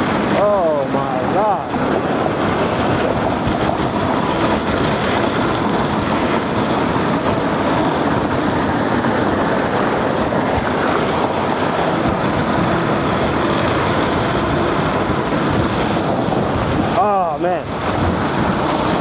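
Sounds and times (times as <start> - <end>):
scooter tyre noise on road: 0.0 - 19.0
wind rushing over microphone: 0.0 - 19.0.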